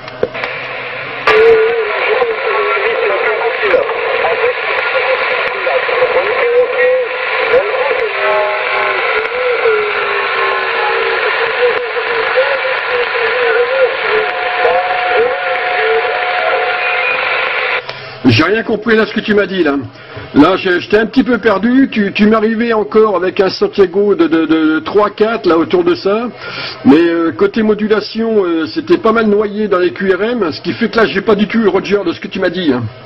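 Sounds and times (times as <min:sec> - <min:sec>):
radio hiss and interference: 0:00.3 - 0:22.9
garbled radio voice: 0:01.3 - 0:17.4.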